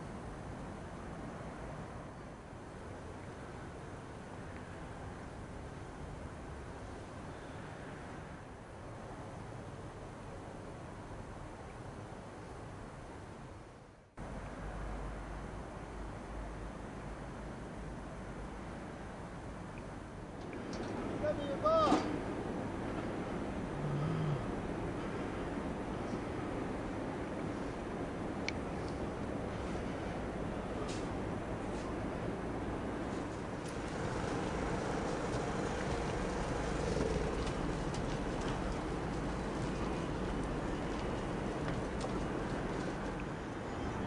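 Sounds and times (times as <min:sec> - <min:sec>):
background hiss: 0:00.0 - 0:44.0
person's short high calls: 0:21.2 - 0:22.1
low voiced sound: 0:23.7 - 0:24.6.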